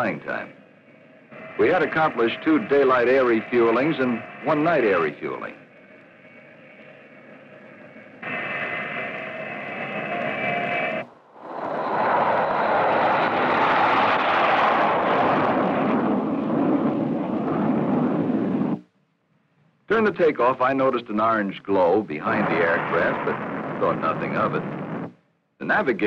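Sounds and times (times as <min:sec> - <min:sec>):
jet engine whine: 0:00.0 - 0:18.9, 0:22.2 - 0:26.0
jet engines roaring on takeoff: 0:00.0 - 0:18.9, 0:21.8 - 0:26.0.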